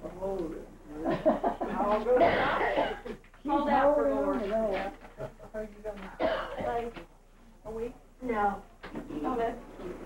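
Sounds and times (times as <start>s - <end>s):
person clearing throat and coughing: 2.2s - 3.2s, 6.2s - 6.8s.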